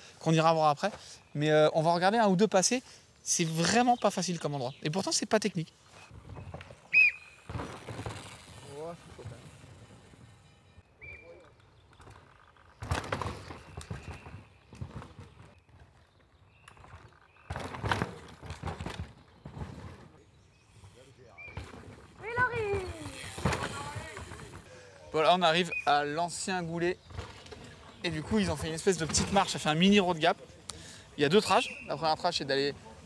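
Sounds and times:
mountain bikes passing on dirt: 5.8s - 33.0s
voices calling out: 21.2s - 33.0s.

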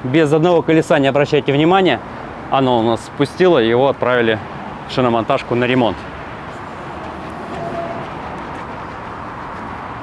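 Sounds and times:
outdoor low rumble: 6.4s - 10.0s.

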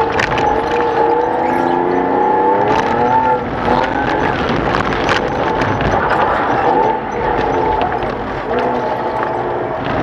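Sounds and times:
race car engine from inside: 0.0s - 10.0s.

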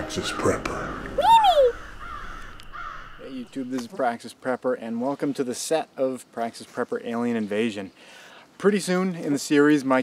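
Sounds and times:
caw-like bird call: 0.8s - 3.6s.

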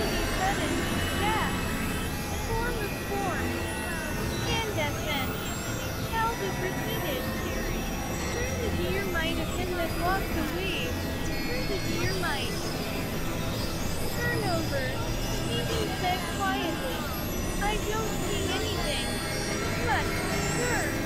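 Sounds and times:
low synthesizer drone: 0.0s - 21.0s
indistinct voice-like sounds: 8.4s - 21.0s.

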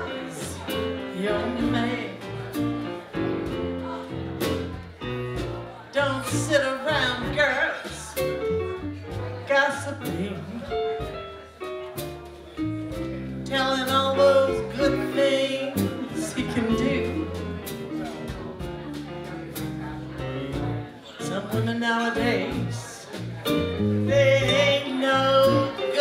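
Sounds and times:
drum kit with cymbals: 0.0s - 26.0s
electric bass: 0.0s - 26.0s.

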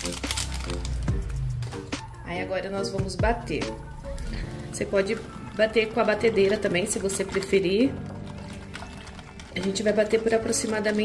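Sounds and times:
foil sachet crinkling: 0.0s - 2.0s, 5.1s - 11.0s
music with repeated notes and bass: 0.0s - 9.5s.

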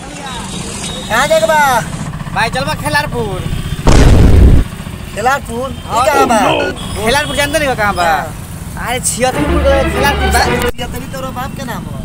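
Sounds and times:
person speaking loudly: 5.9s - 7.1s.

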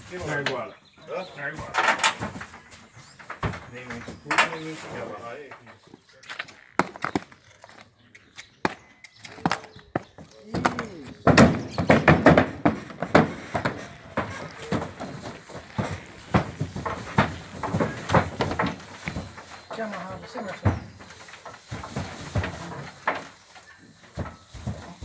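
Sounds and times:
horse hooves on trailer ramp: 0.0s - 7.6s, 9.3s - 25.0s.

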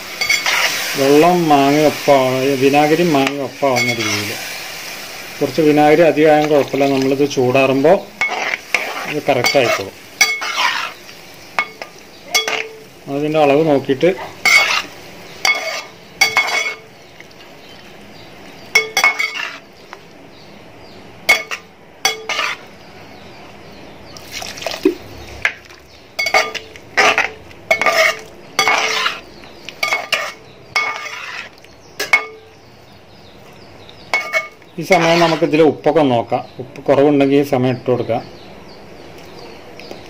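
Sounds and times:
metal spatula scraping a pot: 0.0s - 2.1s, 3.0s - 5.0s, 8.2s - 12.9s, 14.3s - 17.1s, 18.8s - 19.8s, 21.3s - 22.8s, 26.2s - 32.5s, 34.1s - 35.6s.

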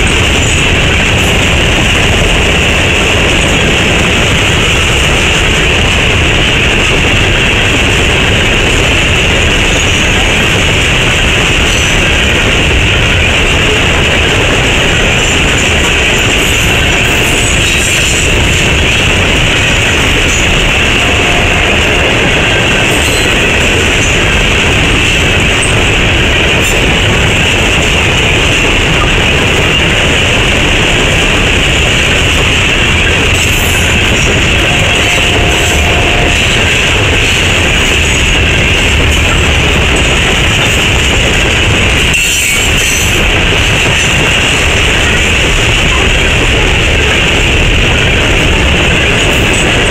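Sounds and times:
train wheels rumbling on rail: 0.0s - 49.9s.

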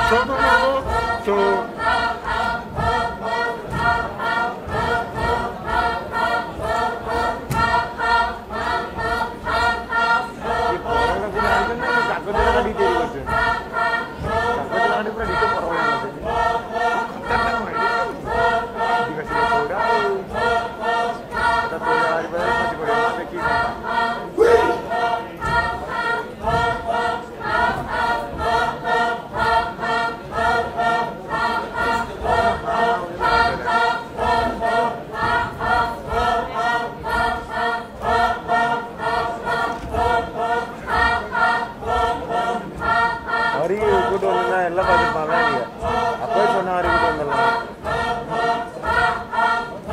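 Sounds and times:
group chanting in unison: 0.0s - 49.9s
low rhythmic thuds: 0.0s - 49.9s.

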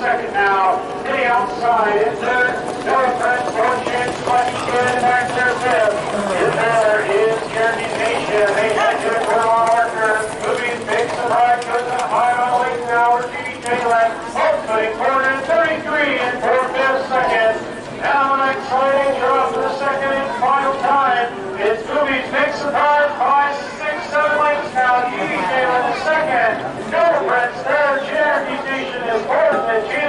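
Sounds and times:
race caller over loudspeakers: 0.0s - 30.0s.

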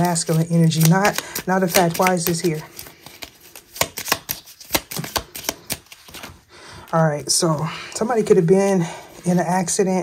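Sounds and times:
cards shuffling: 0.0s - 7.6s.

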